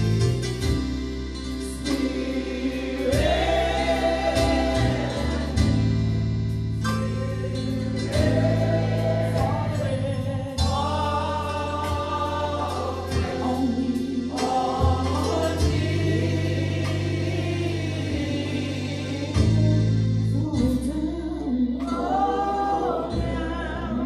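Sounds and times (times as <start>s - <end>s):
electric keyboard: 0.0s - 24.0s
gospel singing: 1.4s - 24.0s.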